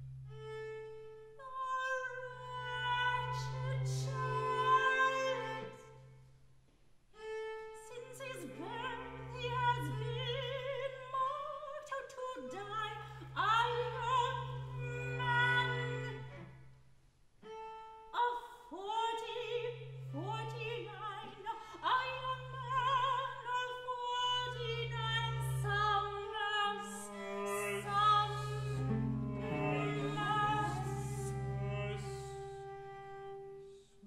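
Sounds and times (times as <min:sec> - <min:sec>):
bowed string note: 0:27.5 - 0:32.3.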